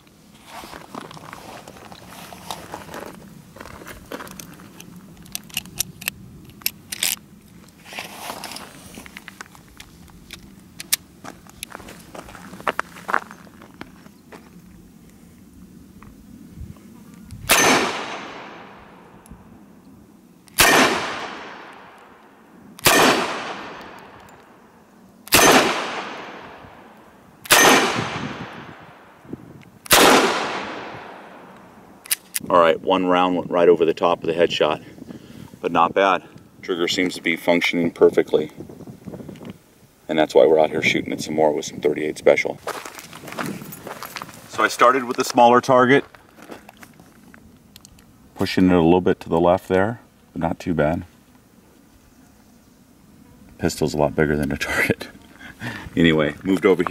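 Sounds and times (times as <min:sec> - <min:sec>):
revolver gunshots echoing: 0:17.5 - 0:19.2, 0:20.6 - 0:22.2, 0:22.8 - 0:24.2, 0:25.3 - 0:26.9, 0:27.5 - 0:29.2, 0:29.9 - 0:31.5.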